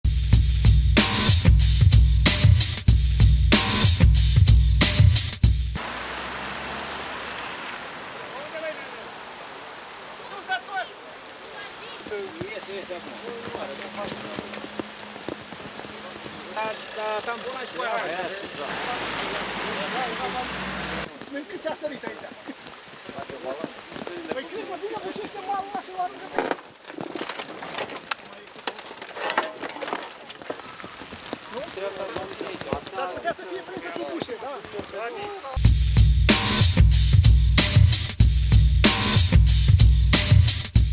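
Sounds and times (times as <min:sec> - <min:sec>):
rain falling steadily: 0:05.7 - 0:40.8
faint voices: 0:08.1 - 0:26.9
indistinct voices: 0:15.9 - 0:21.3.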